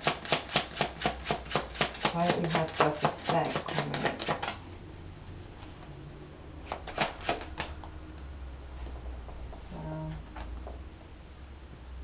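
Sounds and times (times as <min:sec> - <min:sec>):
cards being shuffled: 0:00.0 - 0:04.6, 0:06.6 - 0:07.8.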